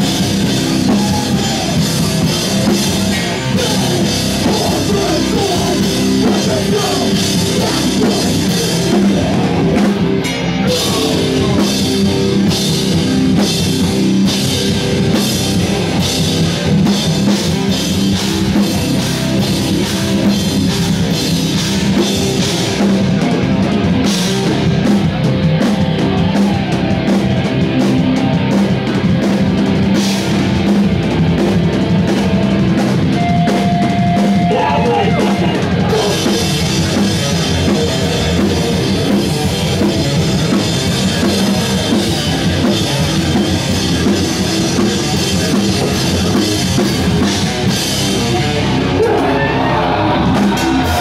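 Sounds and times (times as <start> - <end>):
drum kit: 0.0 - 51.0
heavy rock band playing: 0.0 - 51.0.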